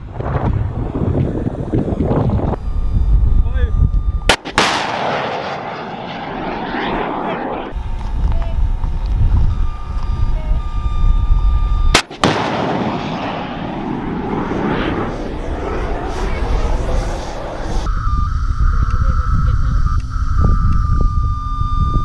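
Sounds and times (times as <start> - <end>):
rocket motor rushing: 2.0 - 22.0
missile launch bang: 4.3 - 7.8, 11.9 - 15.2.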